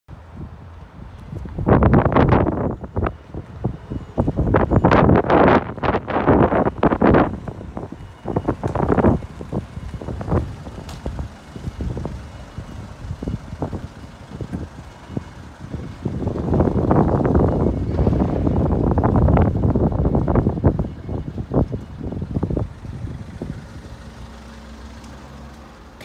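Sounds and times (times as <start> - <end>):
wind buffeting microphone: 0.1 - 24.6.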